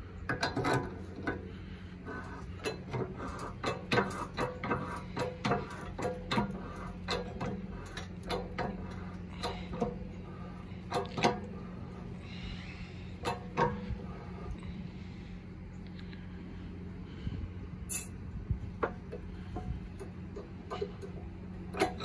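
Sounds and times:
steady low hum: 0:00.0 - 0:22.0
hydraulic jack pumping clicks: 0:00.2 - 0:11.7, 0:13.2 - 0:14.6, 0:18.8 - 0:22.0.

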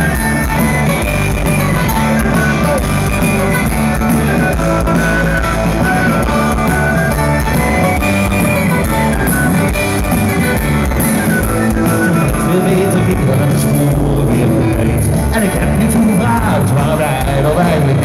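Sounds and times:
bass guitar: 0:00.0 - 0:18.0
drum kit: 0:00.0 - 0:18.0
electric guitars: 0:00.0 - 0:18.0.

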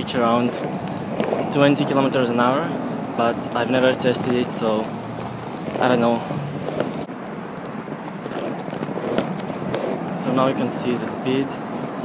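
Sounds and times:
skateboard wheels rolling on pavement: 0:00.0 - 0:12.0.

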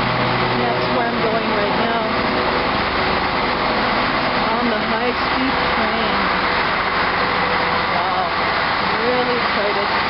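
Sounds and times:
train power car whirring hum: 0:00.0 - 0:10.0
people talking: 0:00.5 - 0:02.2, 0:04.4 - 0:06.5, 0:07.9 - 0:10.0.

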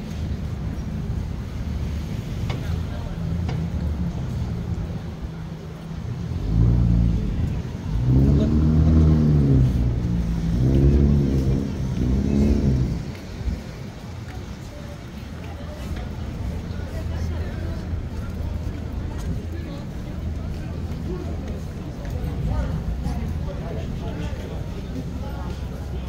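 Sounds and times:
street noise: 0:00.0 - 0:26.0
vehicle engine accelerating: 0:05.8 - 0:14.4.

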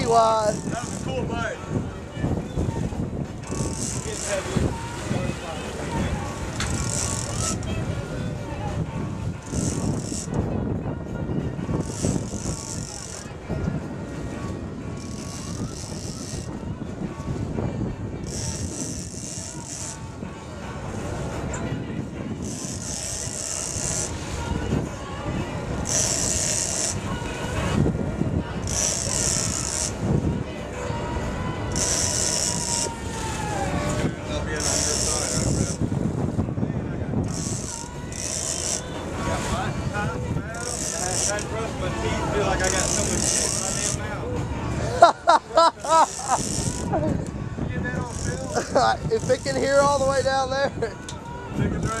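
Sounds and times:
fishing reel drag buzzing: 0:00.0 - 0:01.2, 0:03.4 - 0:04.5, 0:06.6 - 0:07.7, 0:09.4 - 0:10.4, 0:11.8 - 0:13.3, 0:15.0 - 0:16.6, 0:18.2 - 0:20.0, 0:22.4 - 0:24.3, 0:25.8 - 0:27.2, 0:28.6 - 0:30.0, 0:31.7 - 0:33.0, 0:34.5 - 0:35.8, 0:37.2 - 0:39.5, 0:40.5 - 0:41.6, 0:42.5 - 0:44.0, 0:46.0 - 0:47.0, 0:48.0 - 0:49.9
boat engine rumble: 0:00.0 - 0:52.0
water: 0:00.0 - 0:52.0
wind: 0:00.0 - 0:52.0.

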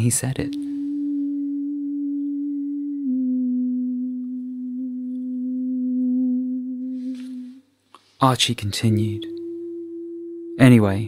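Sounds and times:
sustained pure tone: 0:00.0 - 0:11.0.

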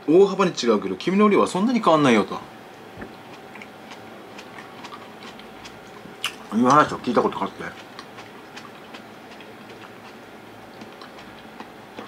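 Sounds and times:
chewing with wet clicks: 0:02.7 - 0:12.0.

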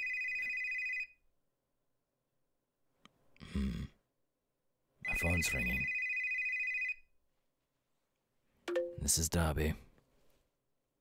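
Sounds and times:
phone ringing with trilling tone: 0:05.0 - 0:07.0.

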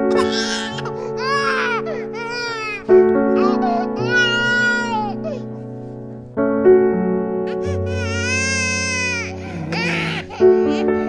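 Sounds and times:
soft background music: 0:00.0 - 0:11.0
infant crying: 0:00.1 - 0:05.5, 0:07.5 - 0:11.0.

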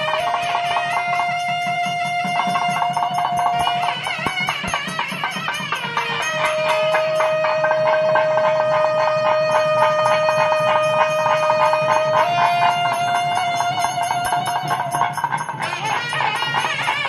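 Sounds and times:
fast drum roll: 0:00.0 - 0:17.0
reed horns holding high note: 0:00.0 - 0:17.0.

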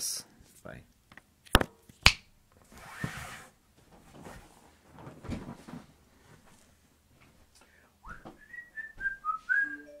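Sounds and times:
whistled tune: 0:08.0 - 0:10.0.

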